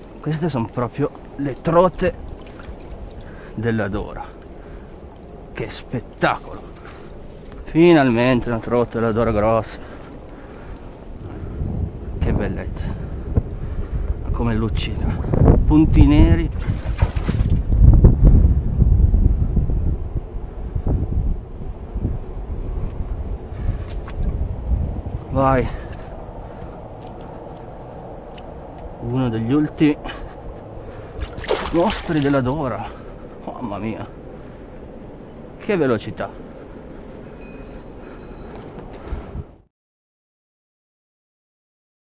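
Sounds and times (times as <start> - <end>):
river water rushing: 0.0 - 8.0, 29.6 - 35.8
wind buffeting microphone: 0.0 - 39.7
faint clicks: 4.3 - 5.4, 28.3 - 28.9.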